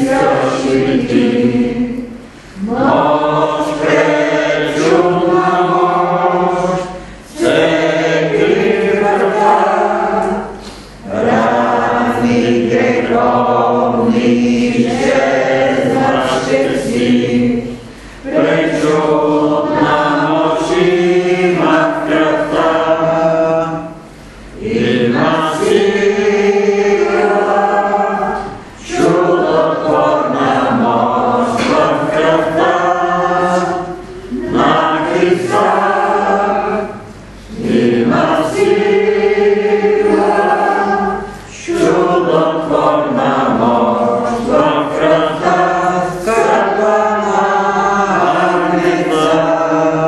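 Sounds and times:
congregation singing a hymn: 0:00.0 - 0:50.0.

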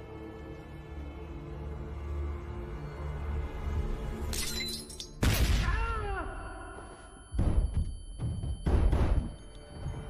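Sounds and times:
tense film score drones: 0:00.0 - 0:04.3
glass shattering: 0:04.3 - 0:05.4.

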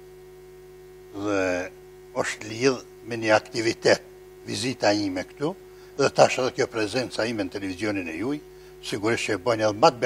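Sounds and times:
electrical hum: 0:00.0 - 0:10.0
man speaking: 0:01.2 - 0:10.0.

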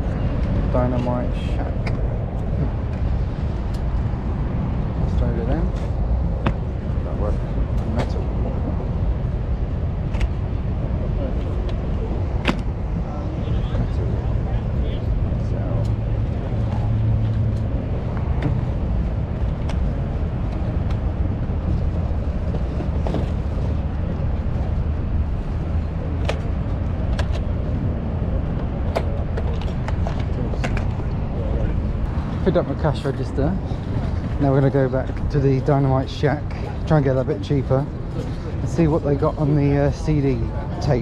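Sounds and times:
steady low rumble: 0:00.0 - 0:41.0.

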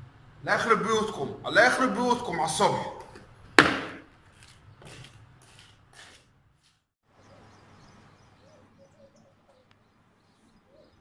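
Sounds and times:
walking stick knocking on concrete: 0:03.0 - 0:06.2
footsteps: 0:03.0 - 0:06.8.

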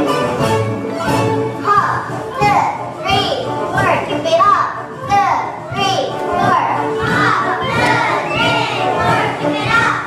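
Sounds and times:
children calling out together: 0:05.9 - 0:10.0.

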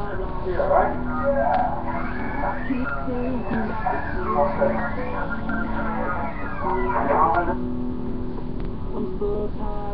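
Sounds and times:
low background noise: 0:00.0 - 0:09.9
person's voice holding a tone: 0:00.6 - 0:07.6.

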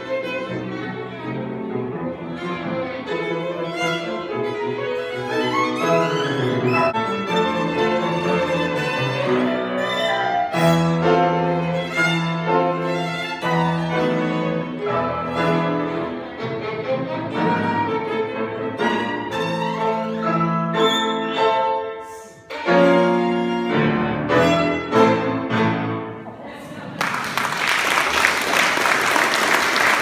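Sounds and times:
violin: 0:00.0 - 0:26.2
piano: 0:00.0 - 0:26.8.

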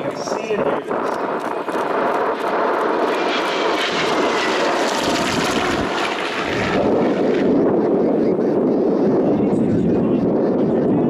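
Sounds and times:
propeller plane flyby: 0:00.0 - 0:11.0.

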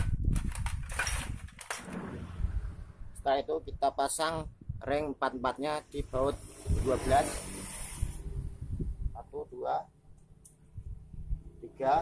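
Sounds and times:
metal parts moved in metal tray: 0:00.4 - 0:01.9
low background rumble: 0:01.4 - 0:04.9.

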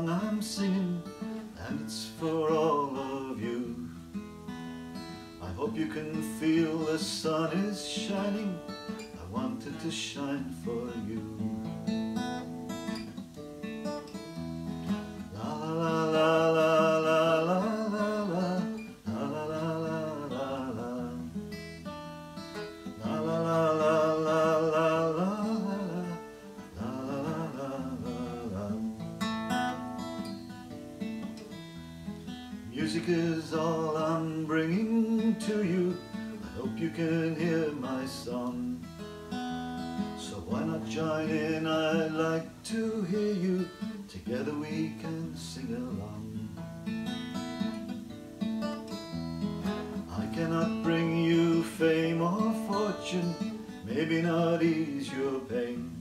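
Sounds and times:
man singing: 0:00.0 - 0:04.1, 0:05.0 - 0:11.8, 0:15.2 - 0:21.5, 0:22.8 - 0:29.2, 0:32.6 - 0:39.0, 0:40.0 - 0:46.6, 0:49.7 - 0:56.0
acoustic guitar strumming: 0:00.0 - 0:56.0.

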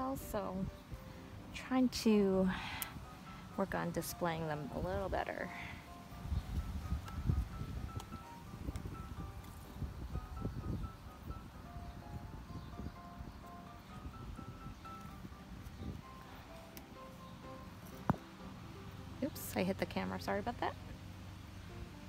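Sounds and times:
soft background melody: 0:00.0 - 0:22.0.

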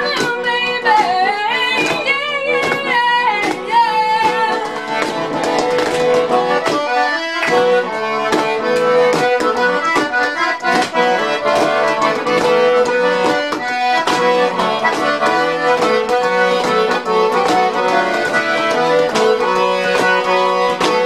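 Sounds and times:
accordion melody: 0:00.0 - 0:21.0
folk band playing: 0:00.0 - 0:21.0.

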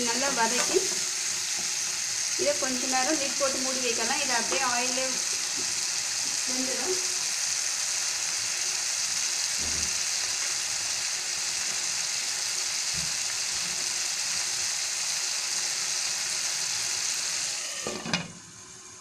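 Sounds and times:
vegetables sizzling in hot oil: 0:00.0 - 0:19.0.

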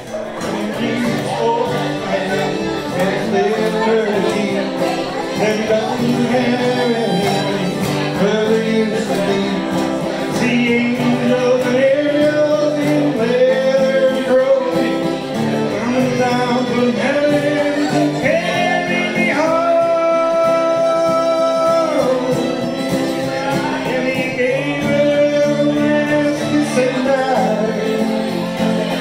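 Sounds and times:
man singing folk song: 0:00.0 - 0:29.0
strummed acoustic guitar: 0:00.0 - 0:29.0
bowed fiddle: 0:00.8 - 0:29.0.

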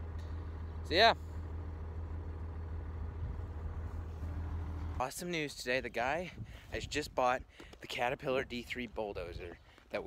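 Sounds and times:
tractor engine running: 0:00.0 - 0:09.8.

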